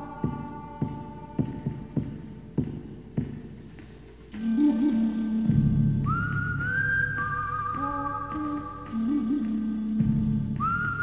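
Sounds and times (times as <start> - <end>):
low musical backing: 0.0 - 11.0
whistled melody: 4.5 - 11.0.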